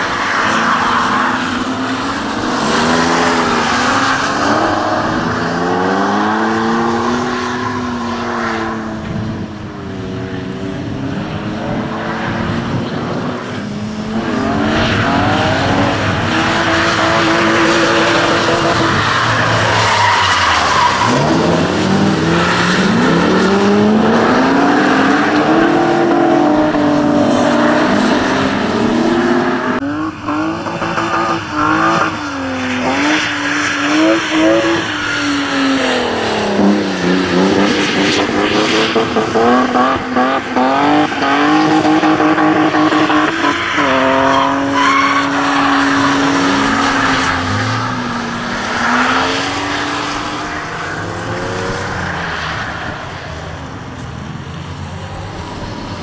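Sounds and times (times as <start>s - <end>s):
car engines revving: 0.0s - 56.0s
tyres skidding on wet track: 0.0s - 56.0s.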